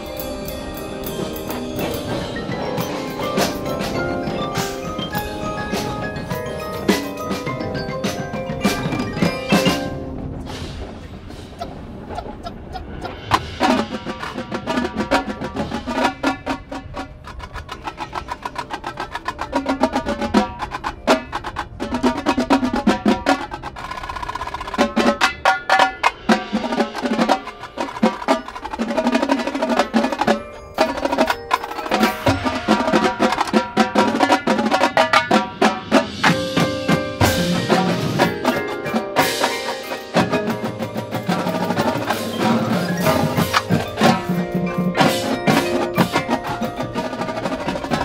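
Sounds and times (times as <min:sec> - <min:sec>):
marching tenor drums: 0:00.0 - 0:48.0.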